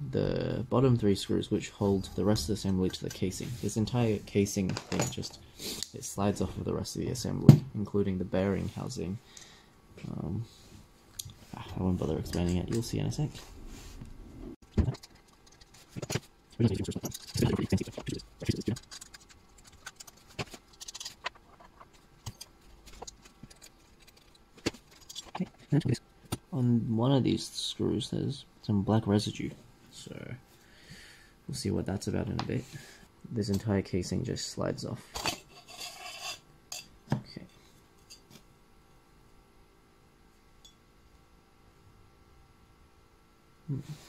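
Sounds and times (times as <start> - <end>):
metal casing scraping: 14.7 - 25.8, 35.2 - 36.4.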